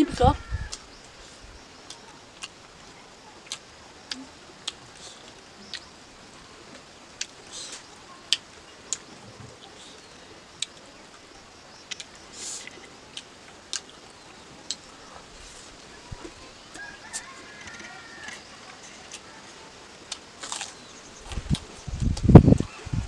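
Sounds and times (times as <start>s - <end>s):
wet chewing and lip smacks: 11.9s - 13.9s.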